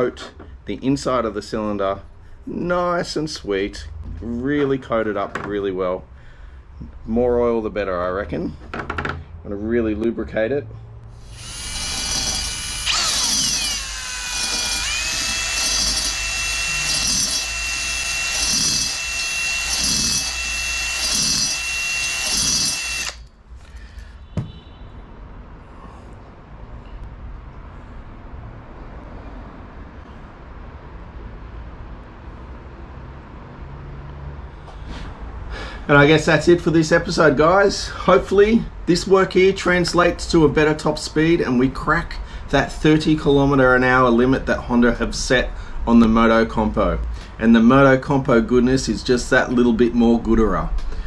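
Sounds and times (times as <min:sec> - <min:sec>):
cordless drill whining: 0:11.2 - 0:23.3.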